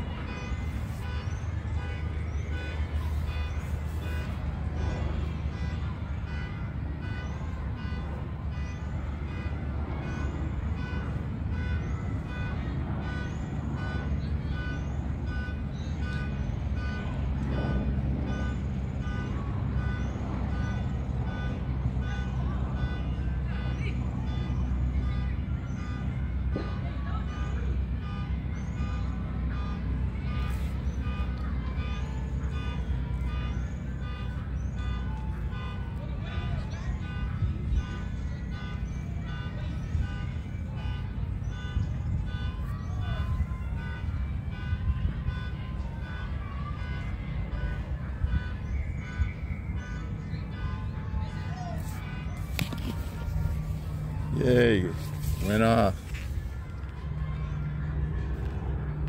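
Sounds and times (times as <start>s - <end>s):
vehicle horn blaring: 0.0s - 59.0s.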